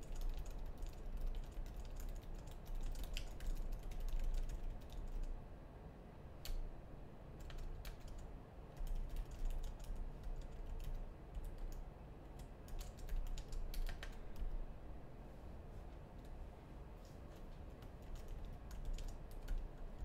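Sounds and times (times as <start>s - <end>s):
typing on a keyboard: 0.0s - 5.4s, 7.4s - 14.6s, 17.7s - 20.0s.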